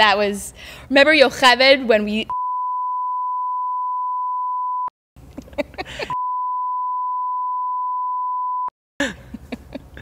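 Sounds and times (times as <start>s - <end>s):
censor bleep tone: 2.3s - 4.9s, 6.2s - 8.7s.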